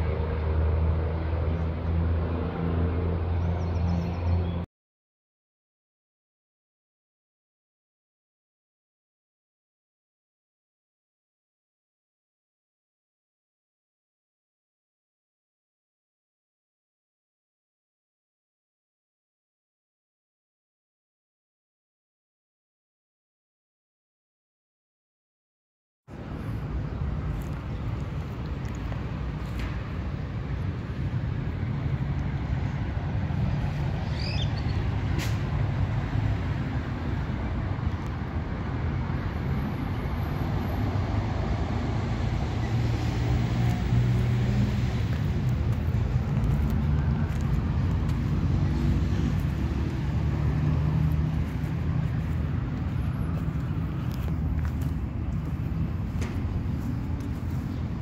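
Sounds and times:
road traffic rumble: 0.0s - 4.7s, 26.1s - 58.0s
bird chirp: 3.4s - 4.6s, 34.0s - 34.9s.

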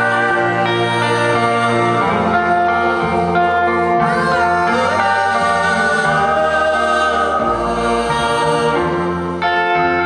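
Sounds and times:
live band playing slow chords: 0.0s - 10.0s.

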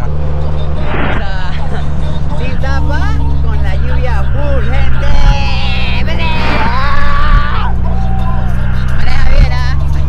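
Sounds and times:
engine and road noise rumble: 0.0s - 10.0s
voices calling out and singing: 1.0s - 10.0s.

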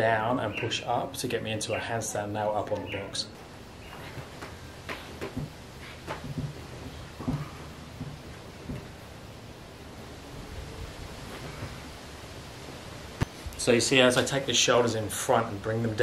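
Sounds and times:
steady faint hiss: 0.0s - 16.0s
soft knocks and rustles: 3.9s - 9.0s.

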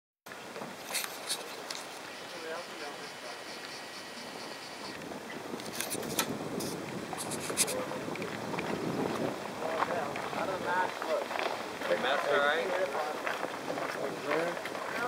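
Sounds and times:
outdoor hiss: 0.3s - 7.8s
people talking indistinctly: 2.1s - 5.0s, 7.2s - 8.5s, 9.1s - 15.0s
wind on microphone: 3.4s - 11.9s.

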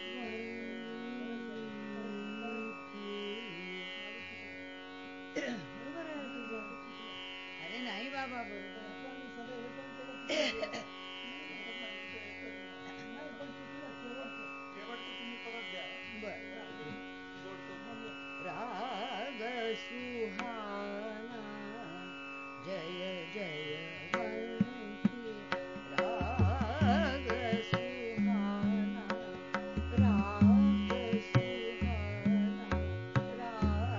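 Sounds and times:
woman singing ornamented melody: 0.0s - 4.3s, 22.6s - 33.9s
tanpura drone: 0.0s - 33.9s.

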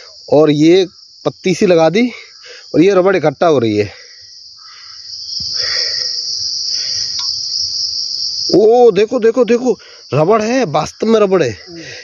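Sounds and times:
high-pitched insect chorus: 0.0s - 12.0s.

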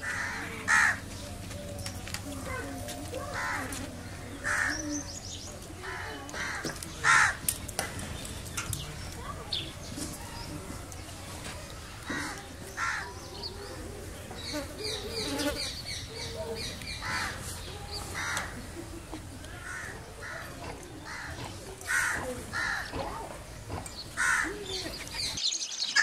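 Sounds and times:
crows cawing: 0.0s - 1.0s, 3.3s - 3.7s, 4.4s - 4.8s, 5.8s - 7.4s, 12.0s - 13.1s, 17.0s - 17.4s, 18.2s - 18.6s, 19.6s - 20.5s, 21.1s - 21.3s, 21.9s - 23.0s, 24.2s - 24.6s
small birds chirping: 0.0s - 26.0s.

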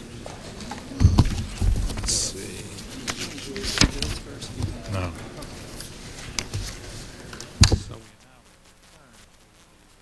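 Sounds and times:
faint murmuring voices: 0.0s - 10.0s
papers rustling: 0.4s - 8.0s
knocks and thumps on wood: 1.0s - 2.1s, 7.6s - 8.0s.

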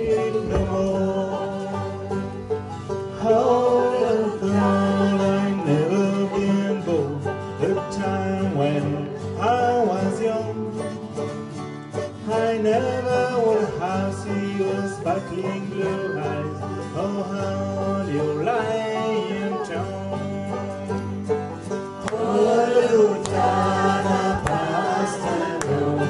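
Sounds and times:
acoustic guitar: 0.0s - 26.0s
banjo: 0.0s - 26.0s
group singing folk song: 0.0s - 26.0s.

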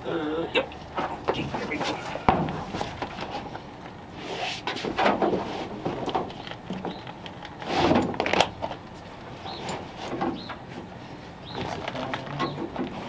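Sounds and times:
bird chirping: 9.4s - 12.7s.

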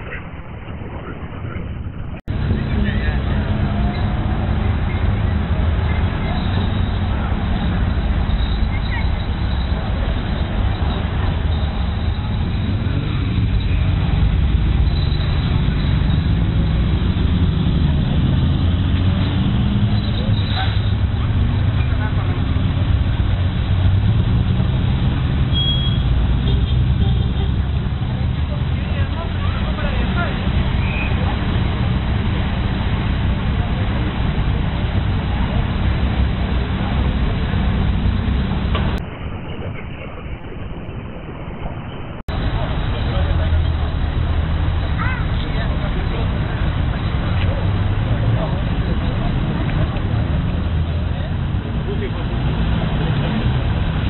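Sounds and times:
car engines rumbling past: 0.0s - 54.0s
people's voices: 0.0s - 54.0s.

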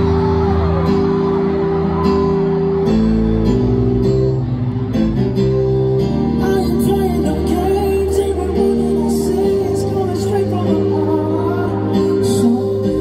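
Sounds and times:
keyboard piano chords: 0.0s - 13.0s
man singing: 6.4s - 13.0s.

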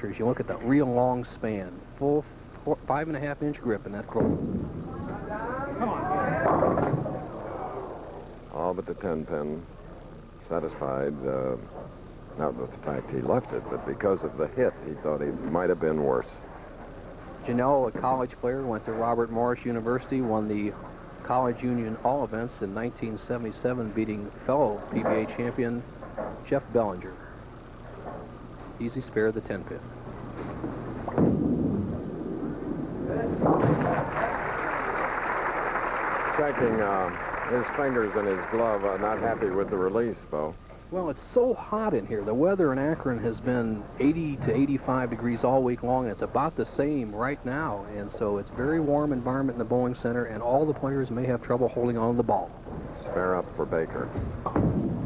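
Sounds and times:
bowling ball rolling rumble: 3.5s - 9.7s, 27.9s - 55.0s
bowling ball crashing into pins: 4.1s - 7.5s, 31.0s - 34.7s, 54.2s - 55.0s
crowd voices: 4.8s - 9.4s, 32.5s - 35.2s, 36.2s - 40.5s.

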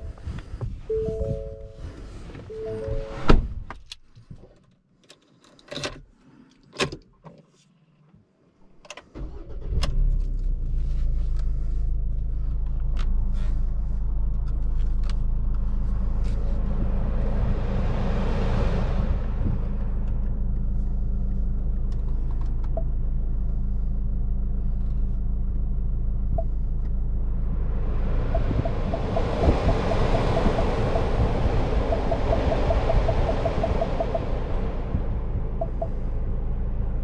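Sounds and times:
engine and tyre rumble: 0.0s - 37.0s.

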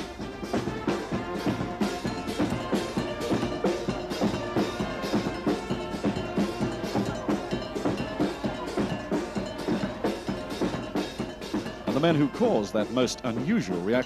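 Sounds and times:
brass band playing calypso: 0.0s - 14.0s
quick steady drum beat: 0.0s - 14.0s.

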